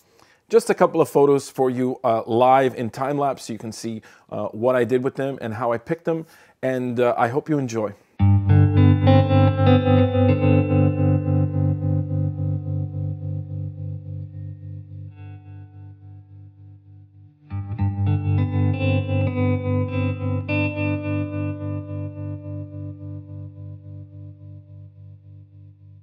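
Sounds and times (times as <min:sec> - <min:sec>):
pulsing electric guitar chords: 0:08.2 - 0:26.0.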